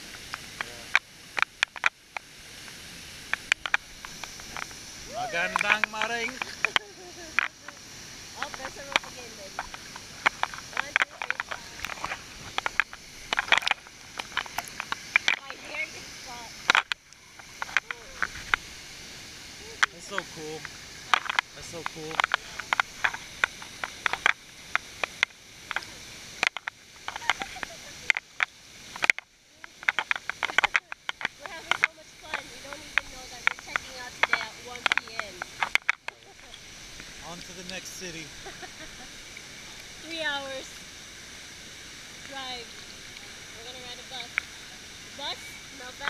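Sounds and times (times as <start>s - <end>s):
waterfall rushing: 0.0s - 46.0s
water splashing against camera housing: 5.4s - 7.8s.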